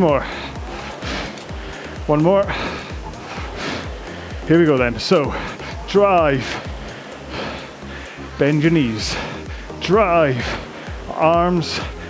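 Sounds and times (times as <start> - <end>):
background music with steady beat: 0.0 - 12.0
rowing machine flywheel whoosh: 0.0 - 12.0.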